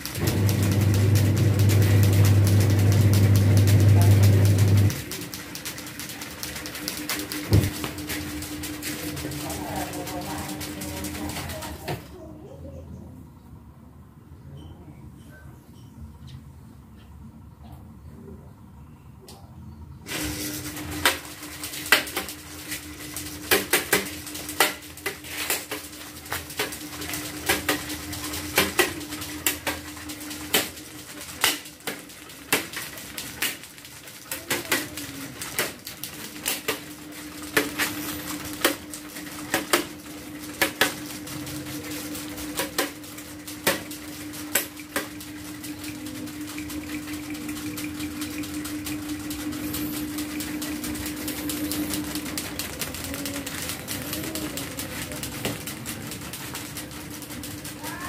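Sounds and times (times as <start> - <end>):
fan motor hum: 0.0 - 58.0
plastic fan blades clicking: 20.8 - 58.0.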